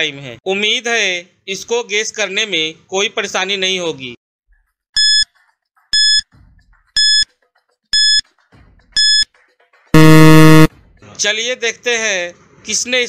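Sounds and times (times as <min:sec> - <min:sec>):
short high beeps: 0:05.0 - 0:05.2, 0:06.0 - 0:06.2, 0:07.0 - 0:07.2, 0:08.0 - 0:08.2, 0:09.0 - 0:09.2, 0:10.0 - 0:10.7
low buzzer: 0:08.0 - 0:08.2, 0:10.0 - 0:10.7.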